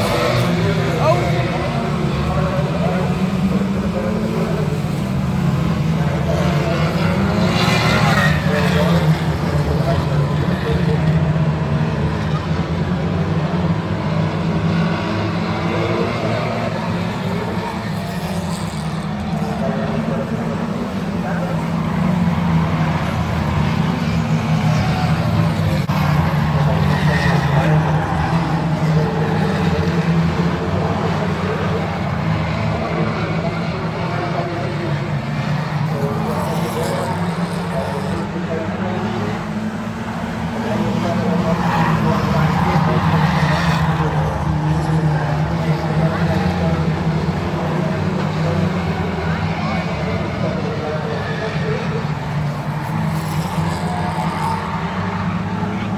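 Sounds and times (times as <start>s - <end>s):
race car engines droning: 0.0s - 55.9s
voices: 0.0s - 55.9s.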